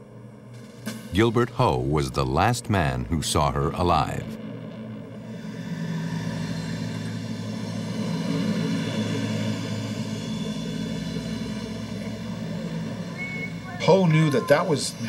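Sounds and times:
low suspense drone: 0.0s - 15.0s.

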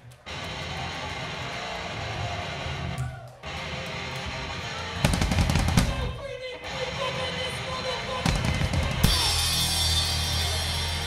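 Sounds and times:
fast drum hits: 5.0s - 6.0s.

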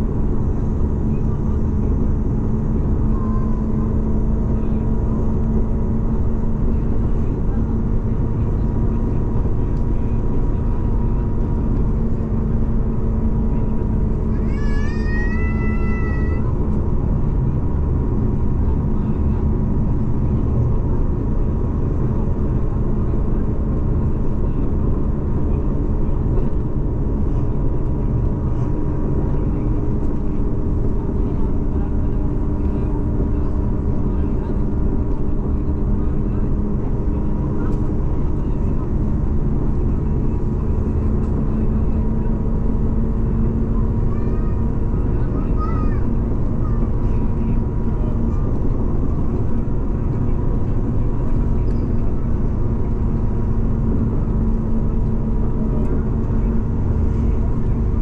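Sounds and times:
road noise rumble: 0.0s - 58.0s
vehicle engine drone: 0.0s - 58.0s.

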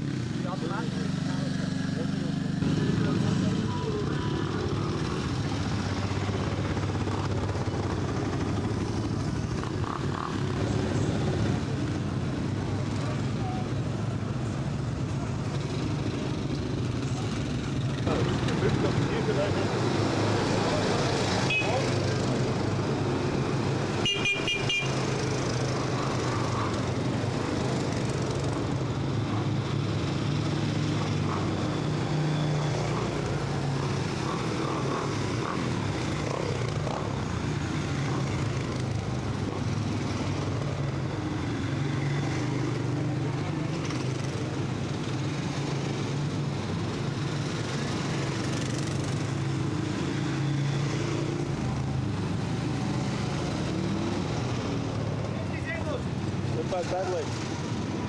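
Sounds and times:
quad bike engines running: 0.0s - 58.0s
horn beeps: 21.4s - 21.8s, 24.0s - 25.0s.

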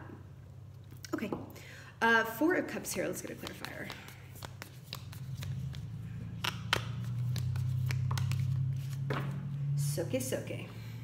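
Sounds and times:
steady low hum: 0.0s - 11.0s
cards being shuffled: 3.2s - 9.4s.

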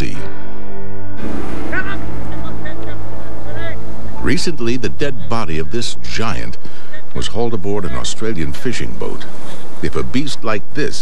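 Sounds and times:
boat engine droning: 1.2s - 11.0s.

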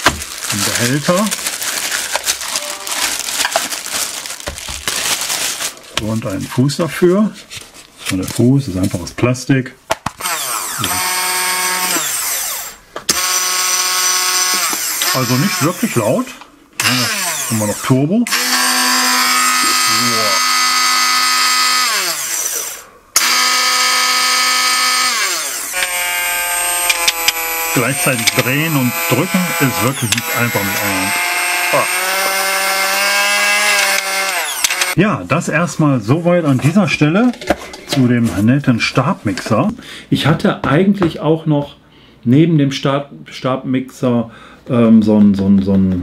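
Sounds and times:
plastic bag crinkling: 0.0s - 6.4s
hand blender whining: 10.2s - 16.2s, 16.8s - 35.0s.

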